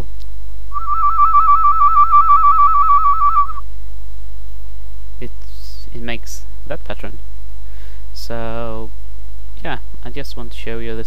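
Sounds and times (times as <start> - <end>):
person whistling a warble: 0.7 - 3.6.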